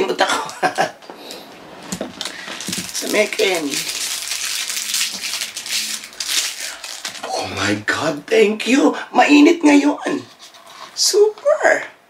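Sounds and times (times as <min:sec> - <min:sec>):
plastic wrapper crinkling: 0:01.8 - 0:07.6.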